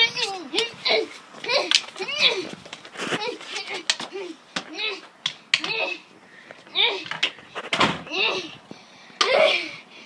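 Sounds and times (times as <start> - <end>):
child's high voice: 0.0 - 6.1, 6.7 - 7.2, 8.0 - 8.6.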